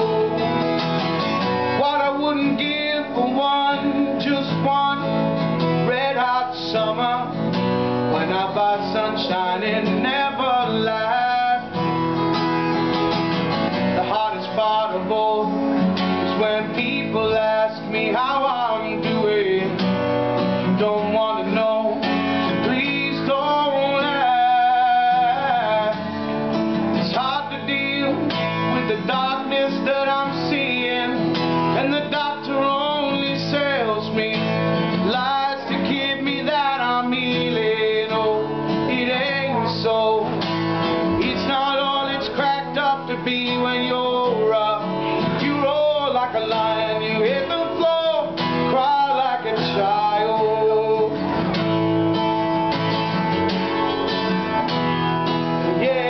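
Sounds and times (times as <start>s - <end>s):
man singing: 0.0s - 12.7s, 13.7s - 51.5s, 55.5s - 56.0s
strummed acoustic guitar: 0.0s - 56.0s.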